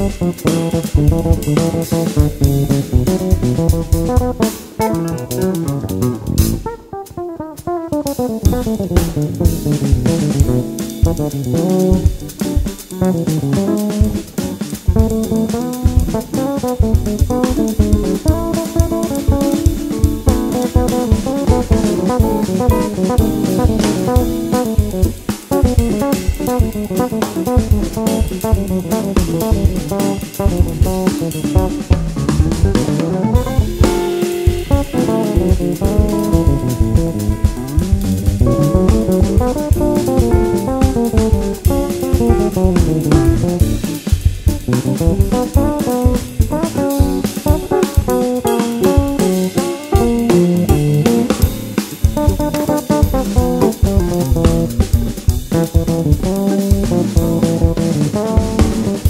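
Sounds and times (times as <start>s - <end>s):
electric bass: 0.0s - 7.2s, 8.1s - 59.0s
drum kit samba groove: 0.0s - 59.0s
electric guitar: 0.0s - 59.0s
piano: 0.0s - 59.0s.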